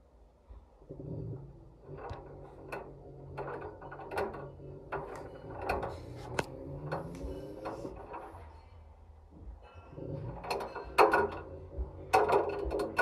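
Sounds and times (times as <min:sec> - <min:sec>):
low motor hum: 0:00.0 - 0:13.0
washing machine drum with water: 0:00.9 - 0:13.0
ball knocking in metal drum: 0:10.0 - 0:13.0.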